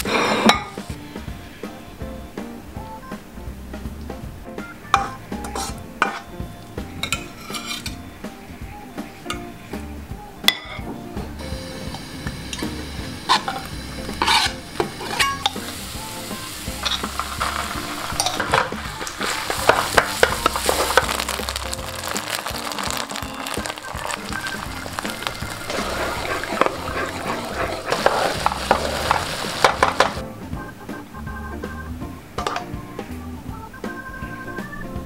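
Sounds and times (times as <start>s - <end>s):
wooden spatula scraping a pan: 7.2s - 8.0s, 13.3s - 15.6s, 16.8s - 30.2s
sauce sizzling in a frying pan: 11.4s - 30.2s.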